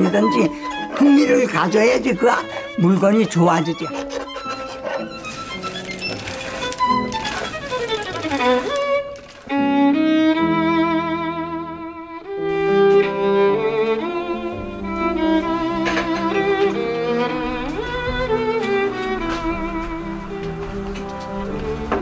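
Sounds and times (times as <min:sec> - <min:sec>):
violin with vibrato: 0:00.0 - 0:22.0.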